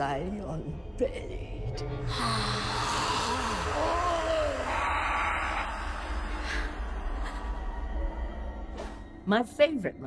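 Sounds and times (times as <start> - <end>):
wavering wordless vocals: 2.0 - 6.9.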